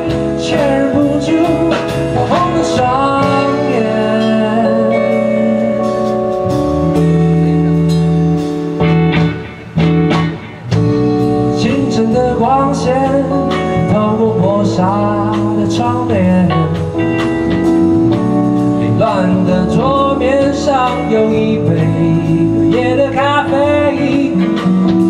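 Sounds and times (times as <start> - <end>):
lead guitar bending notes: 0.0 - 25.0
live blues band playing: 0.0 - 25.0.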